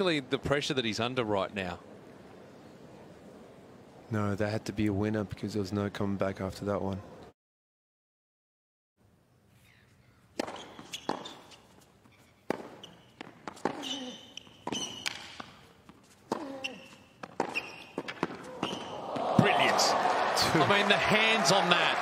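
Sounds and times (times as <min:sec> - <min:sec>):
racket striking tennis ball: 0:10.4 - 0:11.6, 0:12.4 - 0:19.0
tennis ball bouncing: 0:10.4 - 0:11.8, 0:12.4 - 0:19.3
crowd cheering and applause: 0:18.9 - 0:22.0.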